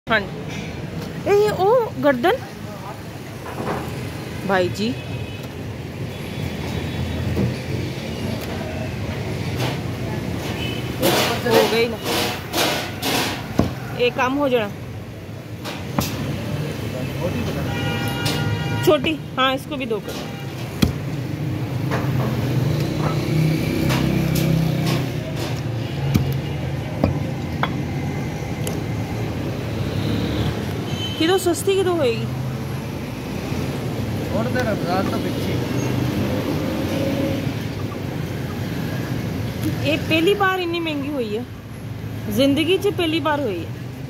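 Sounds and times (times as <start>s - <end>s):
low rumble of road traffic: 0.0s - 44.0s.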